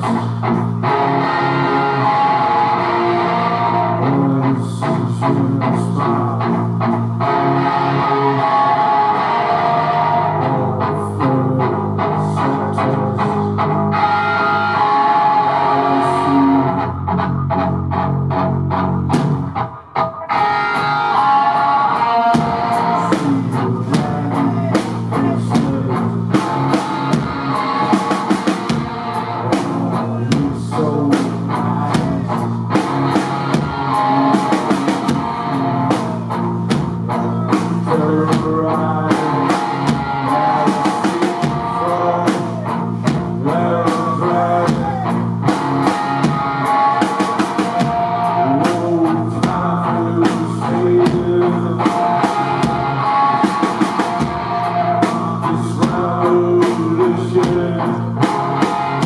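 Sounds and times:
bass guitar: 0:00.0 - 0:59.0
electric guitar: 0:00.0 - 0:59.0
drum kit beat: 0:19.1 - 0:59.0.

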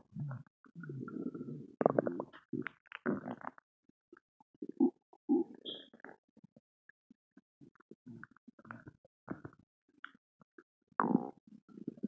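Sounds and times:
stomach gurgling: 0:00.0 - 0:03.6, 0:04.6 - 0:06.2, 0:07.8 - 0:10.2, 0:11.0 - 0:12.0.

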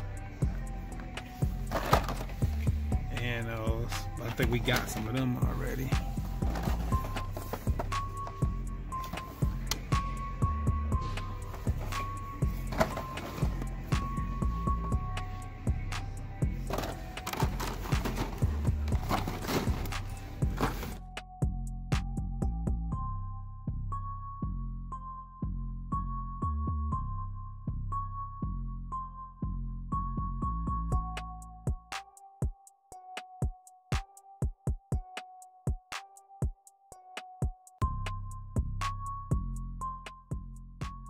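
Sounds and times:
background music with steady beat: 0:00.0 - 0:41.0.

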